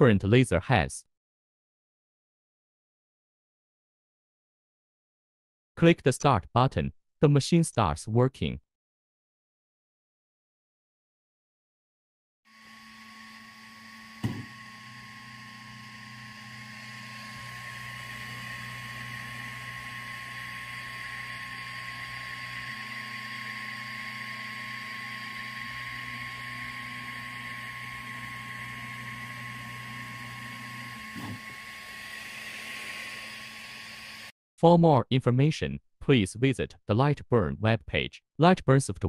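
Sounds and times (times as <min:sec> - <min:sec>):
motors and fan humming: 0:12.5 - 0:34.3.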